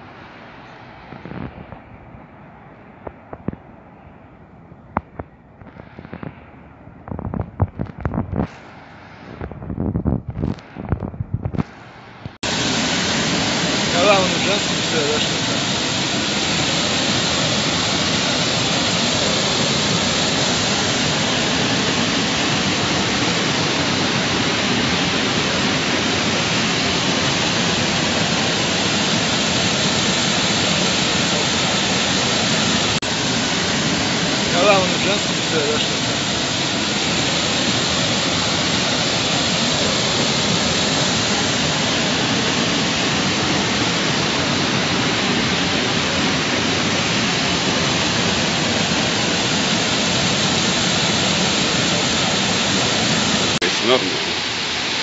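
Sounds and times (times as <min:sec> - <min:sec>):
distant town traffic: 0:00.0 - 0:07.1
wind gusts on microphone: 0:00.0 - 0:52.0
water rushing over weir: 0:11.6 - 0:55.0.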